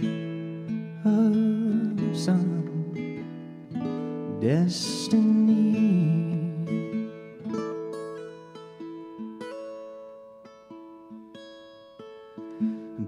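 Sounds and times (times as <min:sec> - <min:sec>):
acoustic guitar picking: 0:00.0 - 0:13.0
person singing: 0:00.9 - 0:08.0.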